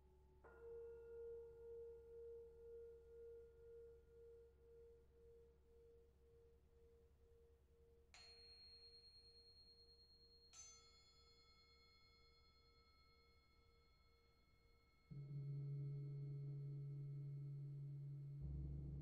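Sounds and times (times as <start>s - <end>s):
singing bowl tone: 0.0s - 19.0s
small hanging bells ringing: 8.2s - 15.1s.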